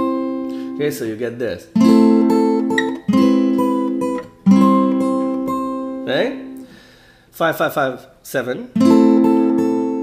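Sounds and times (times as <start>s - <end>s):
fingerstyle acoustic guitar: 0.0s - 0.8s, 1.7s - 6.6s, 8.8s - 10.0s.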